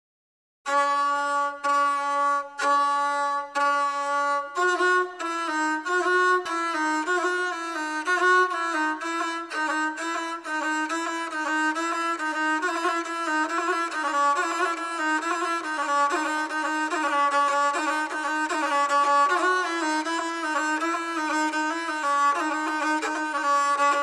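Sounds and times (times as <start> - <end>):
bowed one-stringed fiddle playing: 0.7 - 24.0.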